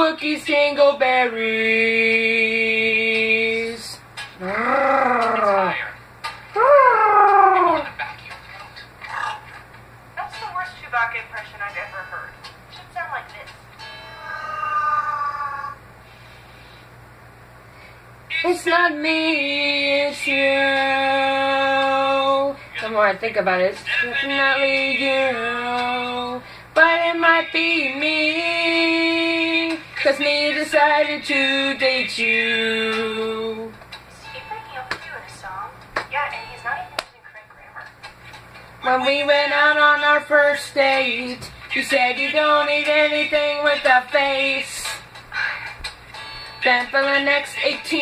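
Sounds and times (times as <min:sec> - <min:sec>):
faint music: 0:00.0 - 0:16.8, 0:18.2 - 0:48.0.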